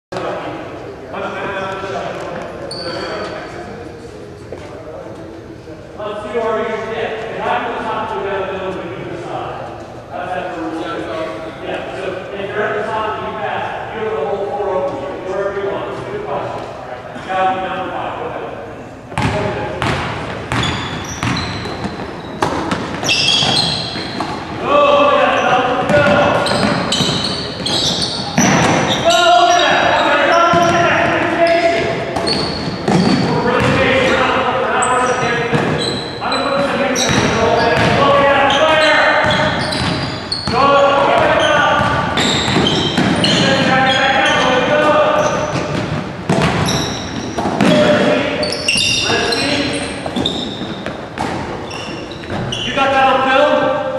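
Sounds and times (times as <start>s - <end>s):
players calling out: 11.8s - 53.9s
basketball bouncing on wooden floor: 19.2s - 24.4s, 25.9s - 29.0s, 32.2s - 33.8s, 37.0s - 38.0s, 39.2s - 43.7s, 45.2s - 48.1s.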